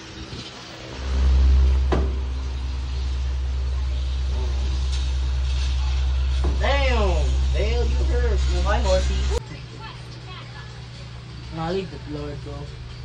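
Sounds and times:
electric fan rumble: 0.0s - 13.0s
fan air blowing on microphone: 0.0s - 13.0s.

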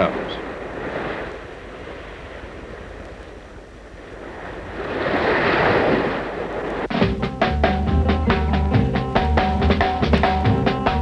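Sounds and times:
ocean waves washing: 0.0s - 11.0s.

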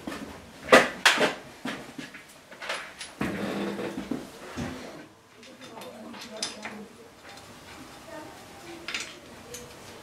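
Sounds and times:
metal tools knocking and clicking: 5.4s - 7.5s.

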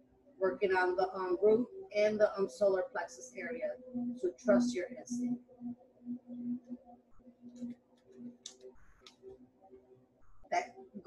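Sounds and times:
soft background music: 0.0s - 11.0s.

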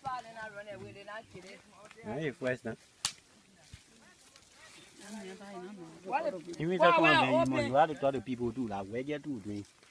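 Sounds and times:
sharp snap: 3.0s - 3.2s.

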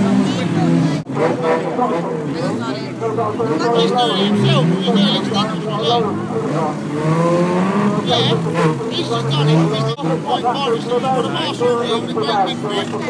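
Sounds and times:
racing car engines revving: 0.0s - 13.0s.

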